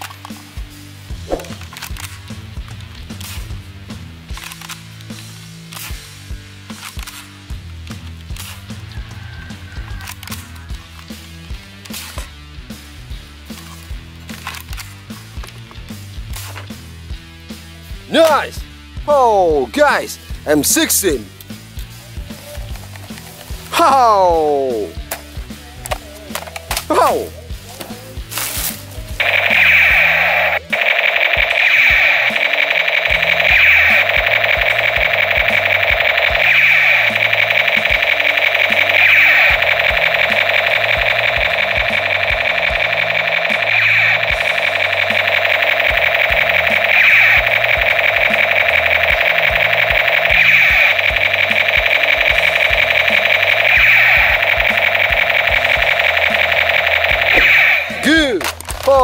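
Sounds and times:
toy rifle buzzing rattle: 29.2 - 58.1.

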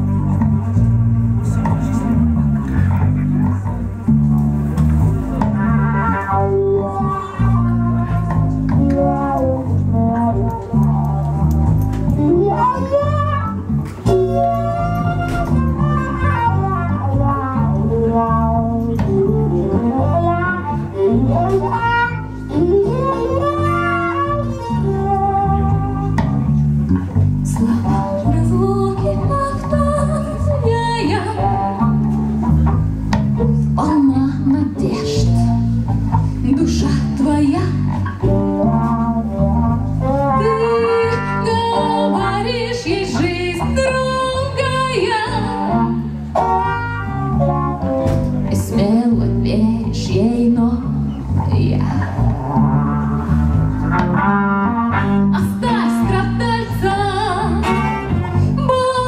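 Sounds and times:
bass guitar line: 0.0 - 59.0
bowed violin melody: 0.0 - 59.0.

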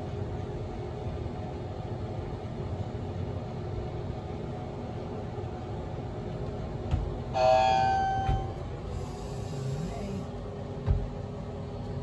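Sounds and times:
elevator car rumbling: 0.0 - 12.0
elevator chime ding: 7.4 - 8.7.

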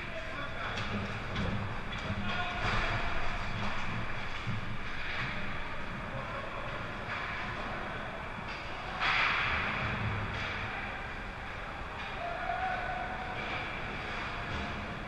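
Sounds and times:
arena noise: 0.0 - 15.0
distant voices: 0.0 - 15.0.

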